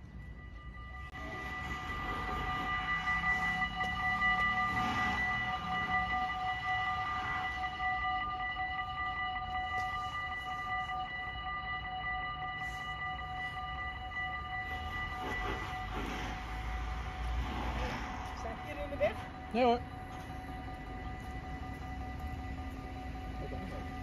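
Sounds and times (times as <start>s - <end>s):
level crossing warning bells: 0.0s - 24.0s.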